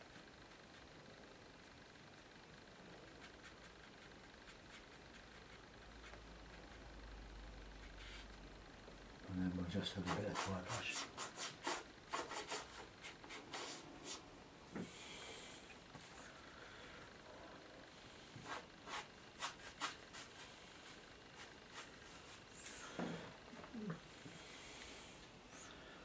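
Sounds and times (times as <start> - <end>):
dry brush scratching paper: 3.1 - 6.8, 7.8 - 8.3, 9.8 - 14.3, 18.4 - 22.6.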